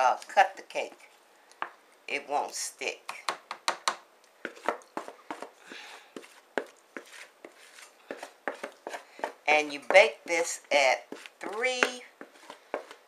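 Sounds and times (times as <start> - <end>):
spatula tapping foil pan and bowl: 11.4 - 12.1.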